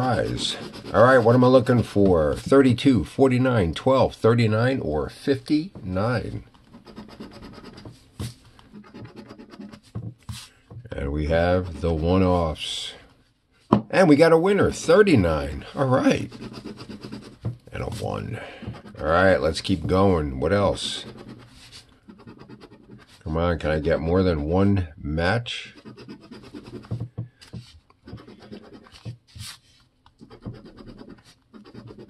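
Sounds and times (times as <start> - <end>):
scraping lottery ticket coating: 0.0 - 2.1, 20.5 - 23.2.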